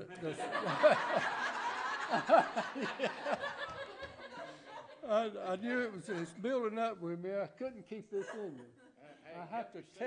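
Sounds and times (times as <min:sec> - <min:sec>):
crowd laughing: 0:00.0 - 0:05.1, 0:08.2 - 0:09.0.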